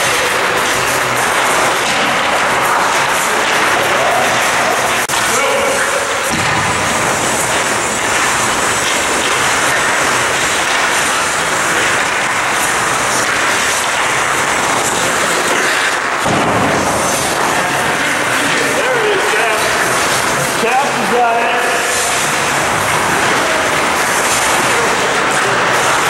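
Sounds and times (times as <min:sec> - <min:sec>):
constant rink rumble: 0:00.0 - 0:26.0
hockey stick and puck hits: 0:00.0 - 0:26.0
skate blades scraping ice: 0:00.0 - 0:26.0.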